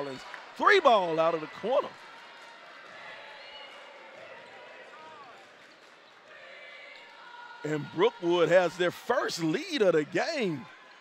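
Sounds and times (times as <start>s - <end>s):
faint voices in hall: 0.0s - 11.0s.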